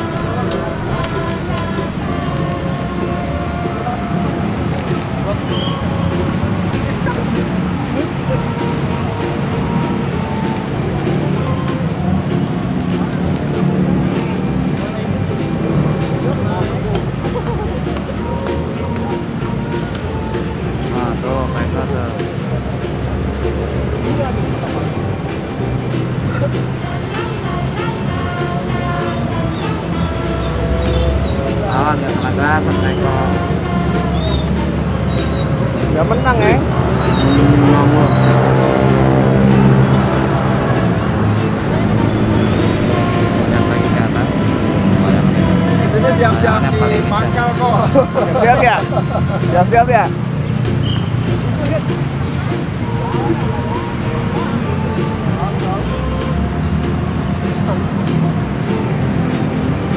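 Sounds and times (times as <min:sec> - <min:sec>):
music with singing voice: 0:00.0 - 0:59.9.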